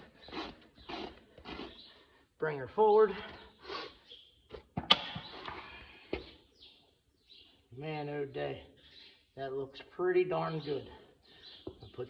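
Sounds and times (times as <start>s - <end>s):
rasp scraping hoof: 0.0s - 2.0s.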